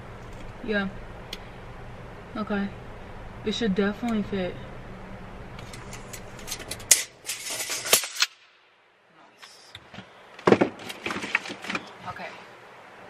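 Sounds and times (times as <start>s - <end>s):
tape measure clicking and rattling: 5.6s - 8.4s.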